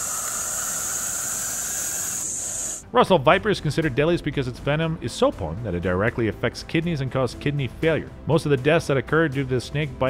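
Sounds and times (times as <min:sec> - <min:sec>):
snake hissing: 0:00.0 - 0:02.9.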